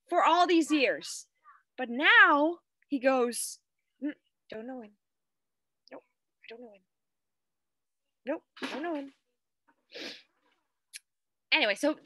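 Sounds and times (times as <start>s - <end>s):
woman speaking: 0.0s - 5.0s, 5.9s - 6.9s, 8.2s - 9.2s, 11.5s - 12.0s.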